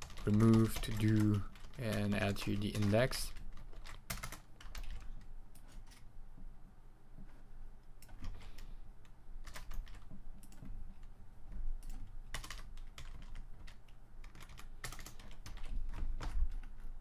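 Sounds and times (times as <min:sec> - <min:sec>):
computer keyboard typing: 0:00.0 - 0:06.0, 0:08.0 - 0:08.7, 0:09.4 - 0:11.1, 0:11.8 - 0:17.0.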